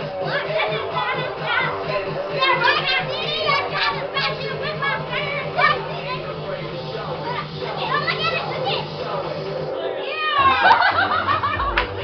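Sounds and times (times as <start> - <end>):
music with pulsing bass line: 0.0 - 9.8, 10.4 - 12.0
children talking and calling out: 0.0 - 10.8.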